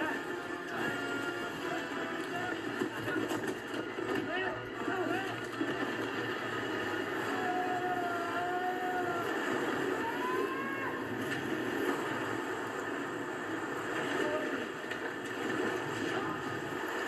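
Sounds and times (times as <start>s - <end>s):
waterfall roaring: 0.0s - 17.0s
people shouting and crying out: 7.2s - 11.2s.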